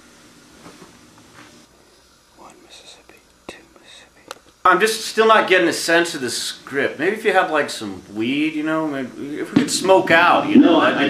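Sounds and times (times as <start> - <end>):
faint whispered muttering: 2.4 - 4.4.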